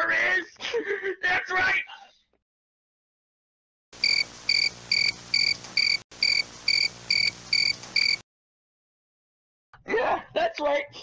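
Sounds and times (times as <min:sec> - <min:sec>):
cricket chirping: 0:04.0 - 0:08.2.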